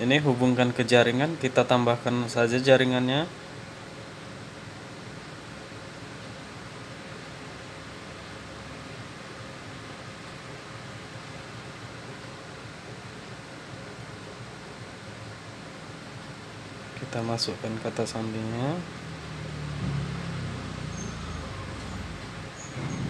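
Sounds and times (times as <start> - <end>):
room noise hiss: 0.0 - 23.0.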